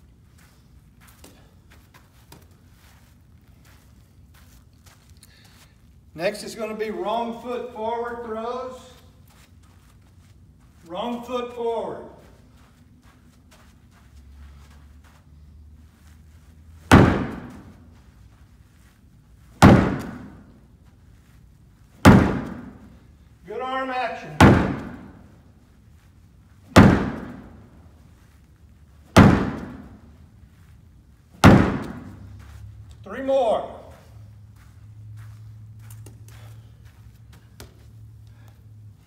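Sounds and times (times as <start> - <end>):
ball slamming against plywood: 16.9 - 17.7, 19.6 - 20.4, 22.0 - 22.8, 24.4 - 25.1, 26.7 - 27.5, 29.1 - 30.0, 31.4 - 32.2.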